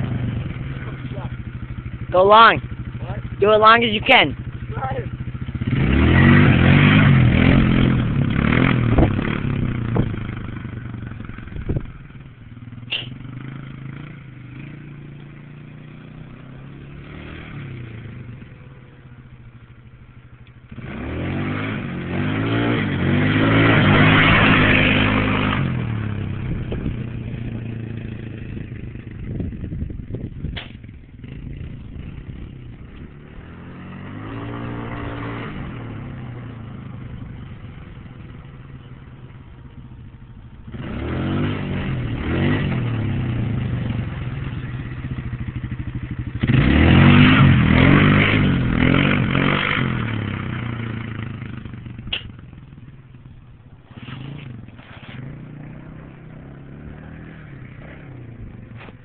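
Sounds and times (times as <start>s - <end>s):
atv engine revving: 0.0s - 59.0s
sharp click: 30.5s - 30.8s, 52.1s - 52.3s.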